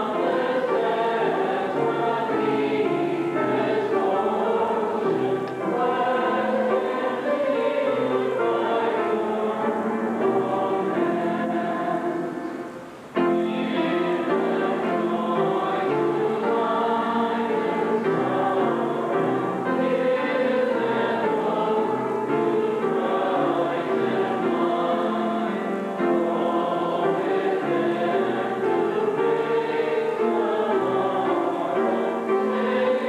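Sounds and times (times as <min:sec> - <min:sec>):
congregation singing a hymn: 0:00.0 - 0:33.0.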